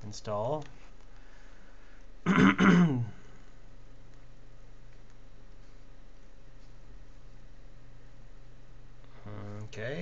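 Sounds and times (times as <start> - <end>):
man clearing his throat: 2.2 - 3.3.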